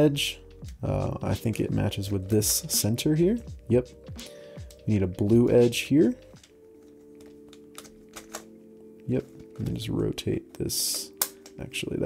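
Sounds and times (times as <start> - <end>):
soft background music: 0.0 - 12.0
plastic puzzle clicking: 6.4 - 8.5.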